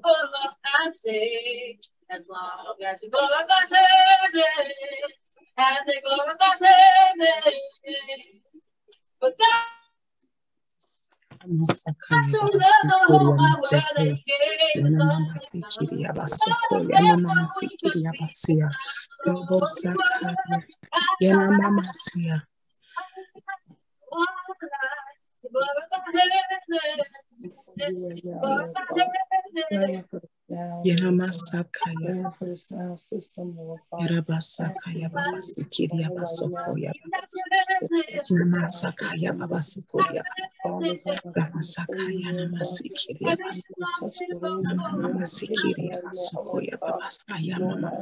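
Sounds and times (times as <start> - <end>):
woman singing: 0.0 - 8.3, 11.4 - 22.4, 23.0 - 27.2, 28.4 - 30.0, 30.9 - 32.6, 34.0 - 48.0
keyboard: 11.4 - 22.4.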